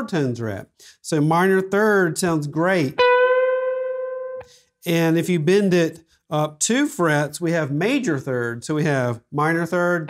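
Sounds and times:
bent electric guitar note: 3.0 - 4.6.

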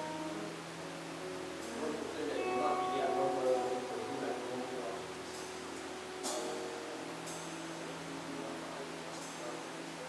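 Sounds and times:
band holding sustained notes: 0.0 - 10.0.

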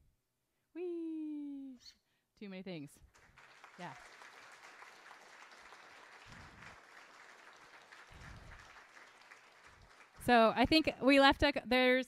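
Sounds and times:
audience applause: 3.1 - 10.8.

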